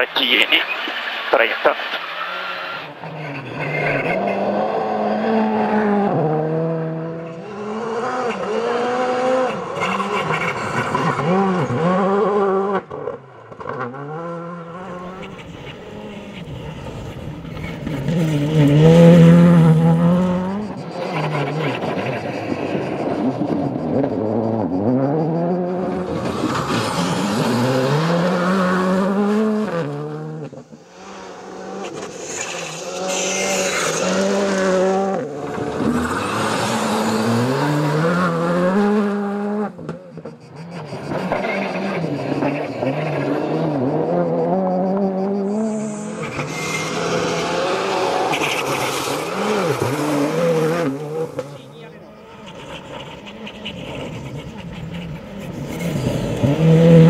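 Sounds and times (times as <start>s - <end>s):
rally car engines revving: 0.0s - 57.0s.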